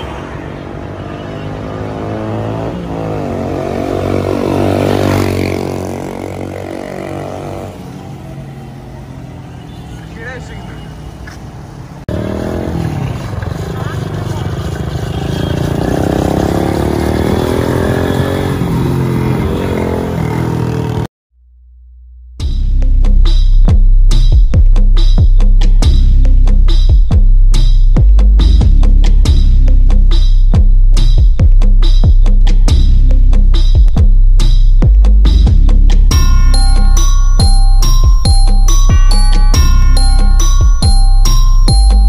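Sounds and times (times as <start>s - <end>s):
motorcycle engine passing by: 0.7s - 10.1s, 12.1s - 21.1s.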